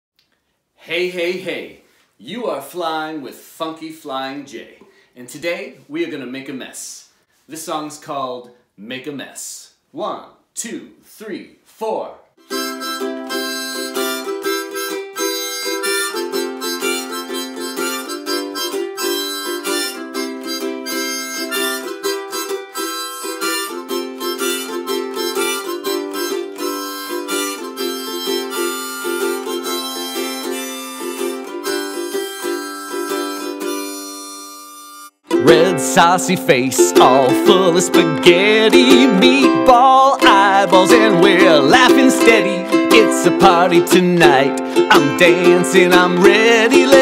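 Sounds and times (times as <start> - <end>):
harmonica playing: 12.4 - 47.0
strummed ukulele: 12.4 - 47.0.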